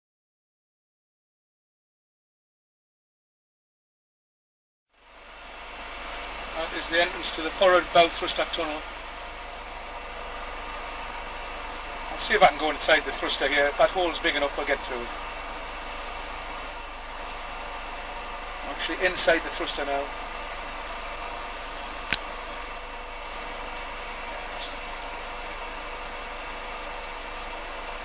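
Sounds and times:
steady hiss: 5.2 - 26.5.

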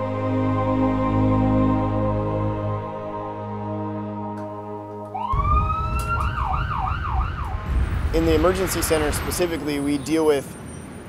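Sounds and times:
background music: 0.0 - 8.6
ambulance siren wailing and yelping: 5.1 - 7.8
street traffic rumble: 5.3 - 11.0.

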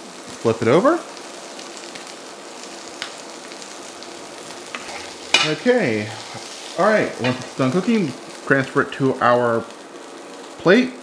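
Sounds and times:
patty sizzling in oil: 0.0 - 11.0.

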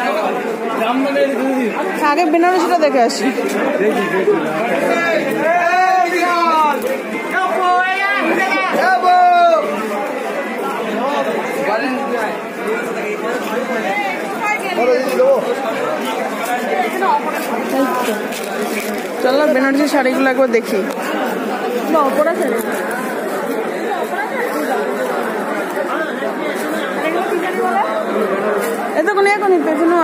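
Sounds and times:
chatter of many voices: 0.0 - 30.0.

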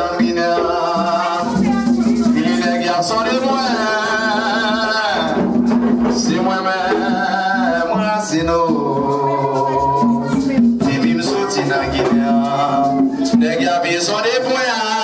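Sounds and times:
hand drums: 0.0 - 15.0
person singing with wavering pitch: 0.0 - 15.0
shaken rattle: 0.2 - 6.8.

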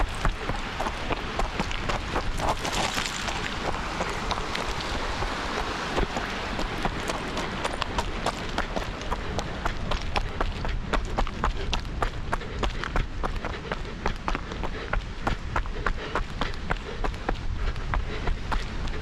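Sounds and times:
running footsteps on stony path: 0.0 - 19.0.

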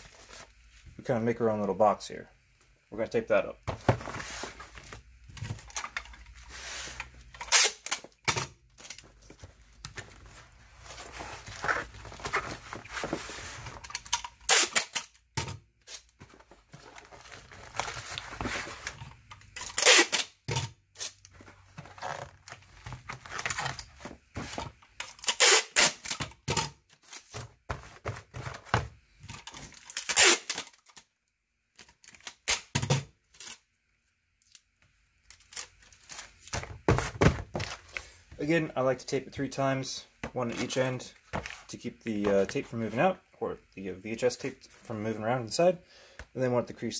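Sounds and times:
packing tape ripping off roll: 7.3 - 9.0, 13.7 - 15.2, 19.6 - 21.3, 25.0 - 27.4, 29.6 - 31.1, 31.8 - 33.6.

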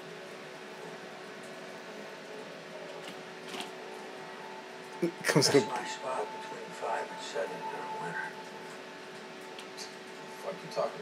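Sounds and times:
background hum: 0.0 - 11.0.

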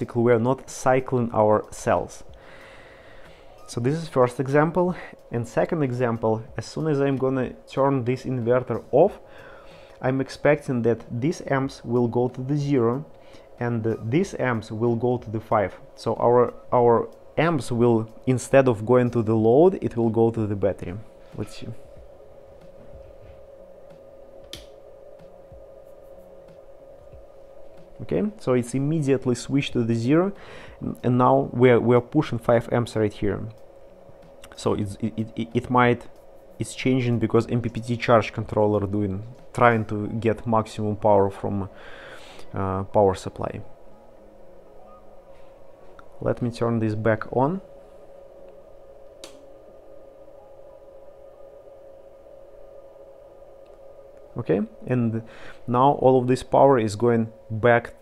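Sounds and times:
faint steady hum: 0.0 - 58.0
power switch click: 24.5 - 24.8.

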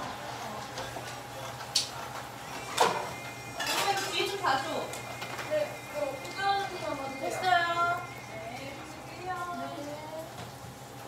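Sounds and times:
steady low hum: 0.0 - 11.0
indistinct voices talking: 1.6 - 10.3.

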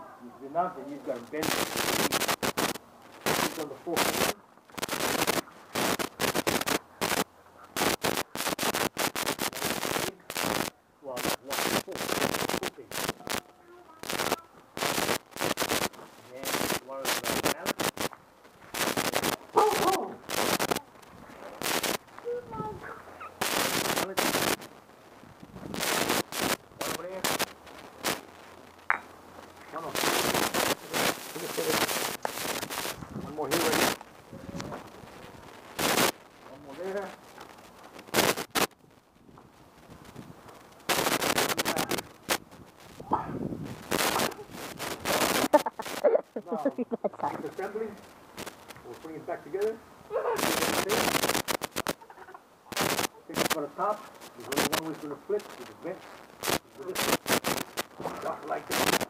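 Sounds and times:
tent fabric crackling and rustling: 0.6 - 59.0.

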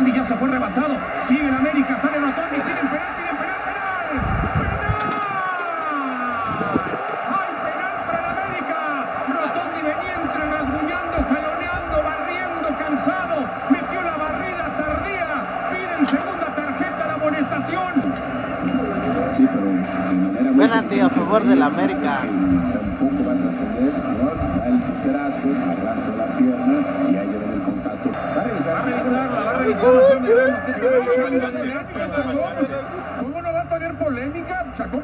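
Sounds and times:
stadium crowd noise: 0.0 - 35.0.

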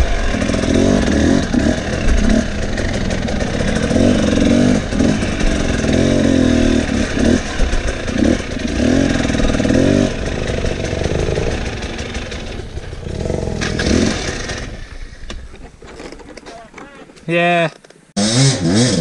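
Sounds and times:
dirt bike engine revving: 0.0 - 15.3, 18.2 - 19.0
bike clattering over ground: 13.6 - 18.0.

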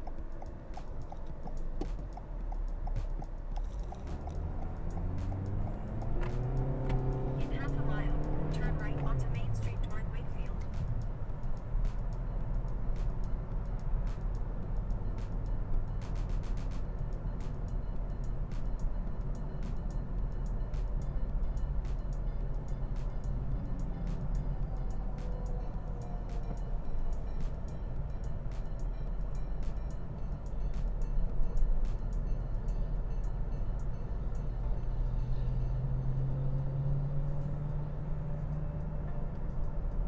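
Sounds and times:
car engine and tyres rumbling: 0.0 - 40.0.

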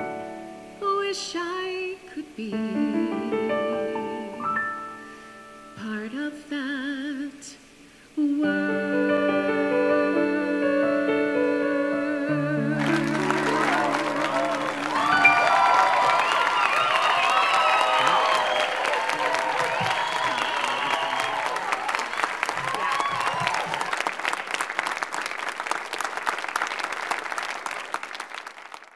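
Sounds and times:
audience applauding: 12.8 - 28.9
voices cheering and calling out: 13.0 - 23.9.

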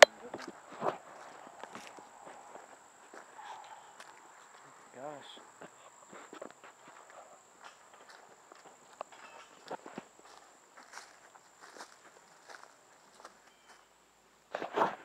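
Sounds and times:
footsteps on grass and leaves: 0.0 - 13.9.

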